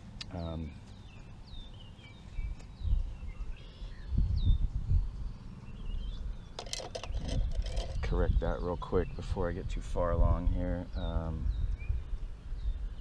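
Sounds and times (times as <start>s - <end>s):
birds chirping: 0.0s - 13.0s
wind gusts on microphone: 2.3s - 13.0s.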